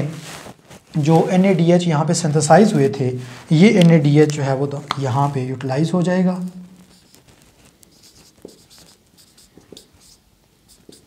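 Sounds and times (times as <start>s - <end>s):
marker pen writing on whiteboard: 6.9s - 11.0s.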